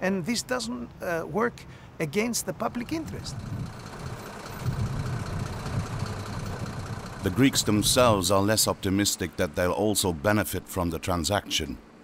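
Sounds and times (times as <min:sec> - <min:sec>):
road noise: 0:00.0 - 0:12.0
truck engine running: 0:02.7 - 0:10.4.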